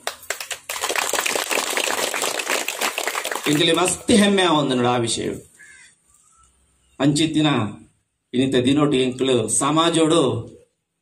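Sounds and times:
group applauding: 0:00.0 - 0:04.1.

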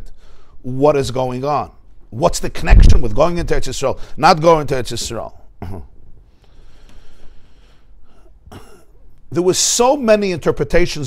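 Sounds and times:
faint room noise: 0:00.0 - 0:11.0
person clearing throat: 0:05.6 - 0:06.0, 0:08.4 - 0:09.1.

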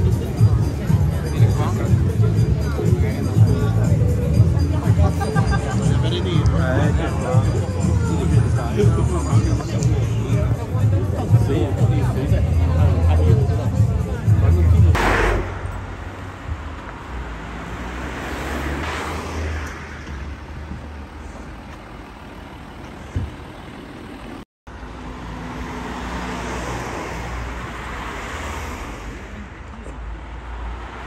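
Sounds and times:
faint voices: 0:00.0 - 0:17.0
cars passing: 0:00.0 - 0:31.0
traffic engine hum: 0:00.0 - 0:31.0.

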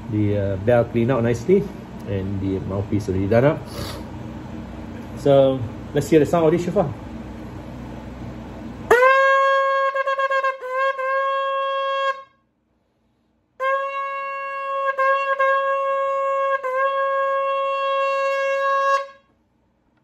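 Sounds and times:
shofar blasts: 0:08.9 - 0:12.4, 0:13.6 - 0:19.3.

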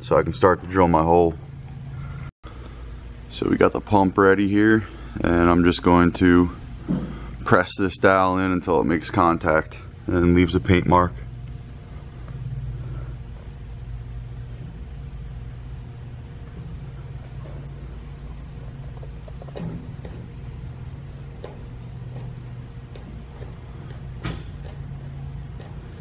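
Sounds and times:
low hum and rumble: 0:00.0 - 0:26.0
faint clicks and knocks: 0:21.3 - 0:26.0.

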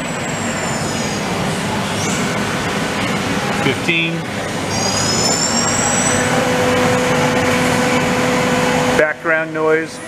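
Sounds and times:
background machine noise: 0:00.0 - 0:10.0
machine spindle high whine: 0:00.0 - 0:10.0.

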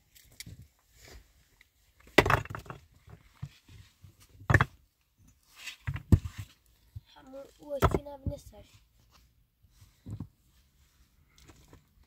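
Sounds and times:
stones knocking and scraping: 0:01.9 - 0:08.5, 0:10.0 - 0:10.4.

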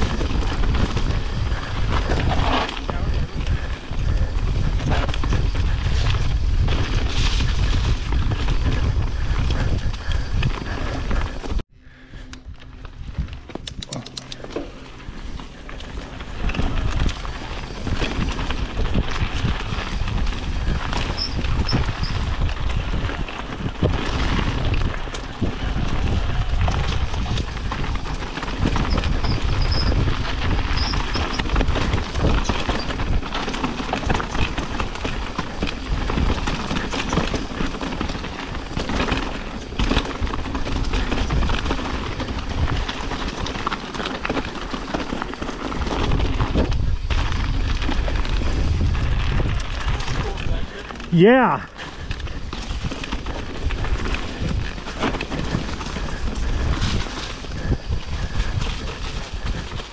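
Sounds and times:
bike rattling over rocks: 0:00.0 - 0:11.6, 0:12.5 - 0:59.9
wind buffeting microphone: 0:00.0 - 0:59.9
tyres crunching over stones: 0:12.8 - 0:59.9.

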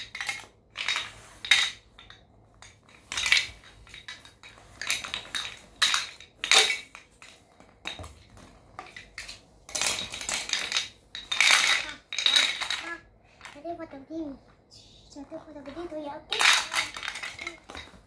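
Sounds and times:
toy blocks clattering: 0:00.0 - 0:14.0, 0:15.2 - 0:18.0.

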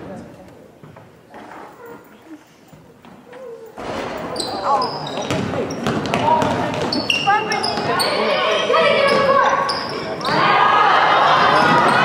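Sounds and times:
sneaker squeaks: 0:01.4 - 0:10.6
spectators talking and calling out: 0:03.3 - 0:12.0
basketball bouncing on hardwood floor: 0:05.1 - 0:08.0.

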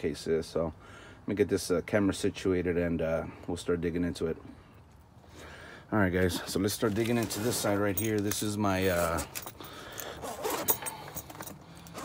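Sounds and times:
zipper being pulled open: 0:10.1 - 0:12.0.

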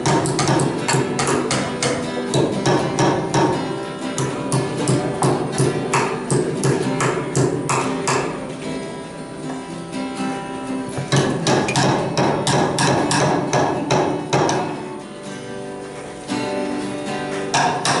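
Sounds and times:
hammer striking nails into wood: 0:00.0 - 0:08.4, 0:11.0 - 0:14.8, 0:17.4 - 0:18.0
acoustic guitar music: 0:00.0 - 0:18.0.

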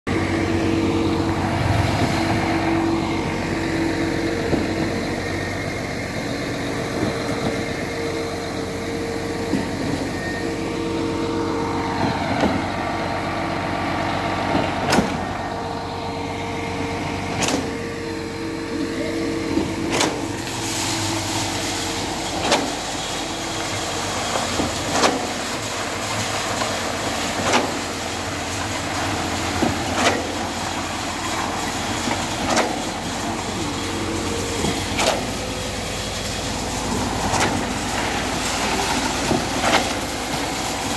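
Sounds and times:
concrete pump engine drone: 0:00.1 - 0:40.9.

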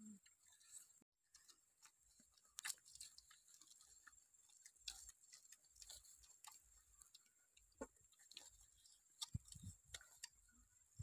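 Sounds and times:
puppies chewing and licking: 0:00.3 - 0:10.6.

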